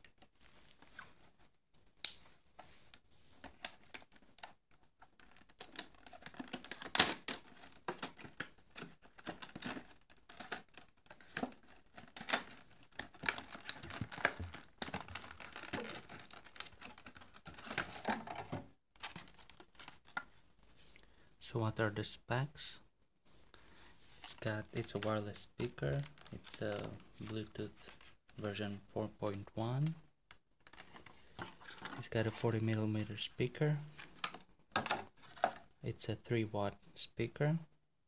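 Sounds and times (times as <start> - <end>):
plastic packaging crinkling: 5.1 - 18.4.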